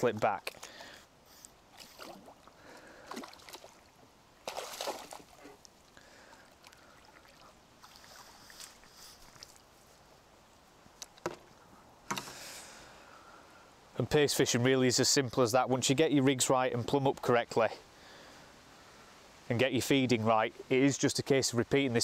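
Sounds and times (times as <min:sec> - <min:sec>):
water splashing and sloshing: 0:00.0 - 0:10.2.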